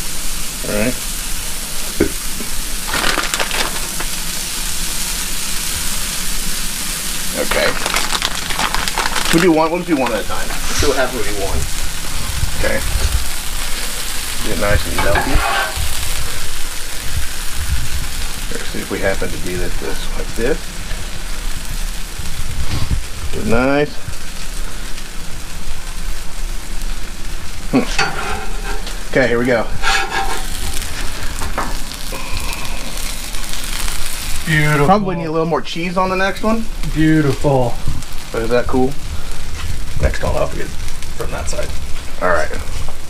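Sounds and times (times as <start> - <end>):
cheese sizzling on griddle: 0.0 - 43.0.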